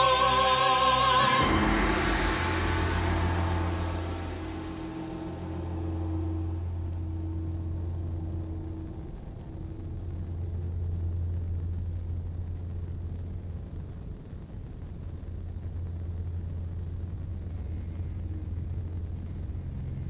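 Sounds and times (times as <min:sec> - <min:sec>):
large gong ringing: 0:00.0 - 0:08.8.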